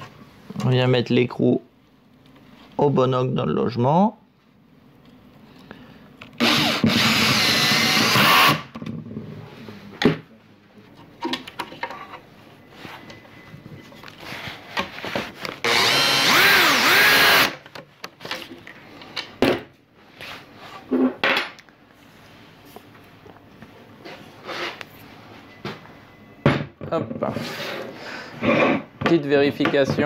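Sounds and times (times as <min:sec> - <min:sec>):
cordless drill driving screws: 0:06.4 - 0:08.7, 0:15.6 - 0:17.6.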